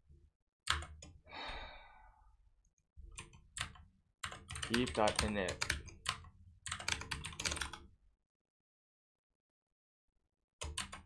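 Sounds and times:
person sighing: 1.3 - 2.2.

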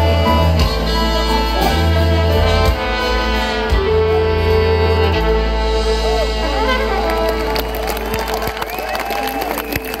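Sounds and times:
live band and choir: 0.0 - 10.0
audience clapping and cheering: 6.6 - 10.0.

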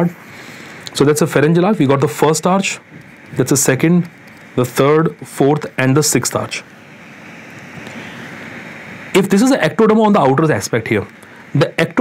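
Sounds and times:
background hiss: 0.0 - 12.0.

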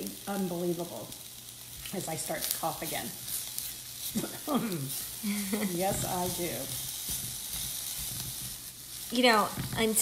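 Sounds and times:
vegetables sizzling in a pan: 0.0 - 10.0.

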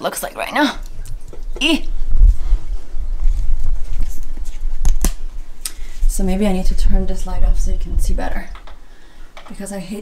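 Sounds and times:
footsteps: 0.9 - 6.1
camera handling rumble: 3.3 - 5.3.

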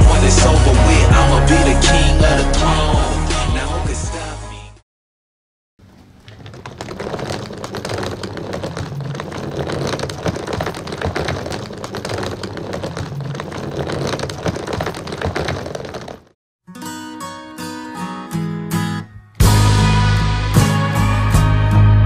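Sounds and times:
suitcase wheels rolling on stone: 5.8 - 16.4
acoustic guitar music: 16.7 - 21.9.

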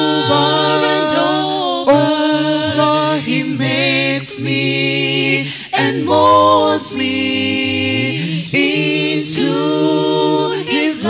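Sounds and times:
a cappella vocal quartet singing: 0.0 - 11.0.

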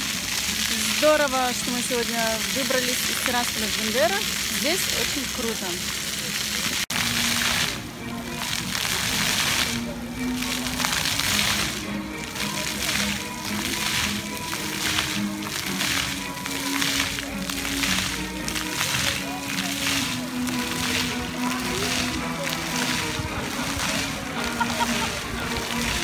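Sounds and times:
fountain jets splashing on paving: 0.0 - 26.0
music: 0.0 - 26.0.

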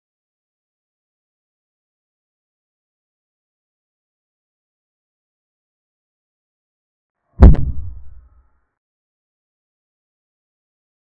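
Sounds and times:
sharp crack: 7.4 - 8.3
low boom: 7.4 - 8.4.

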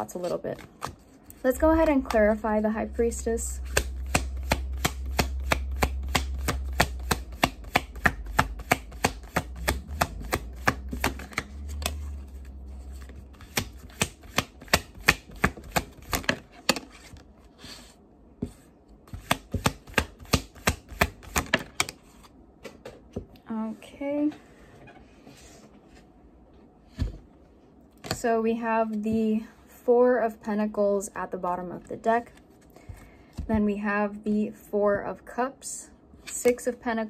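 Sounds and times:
cards being shuffled: 3.6 - 17.2.

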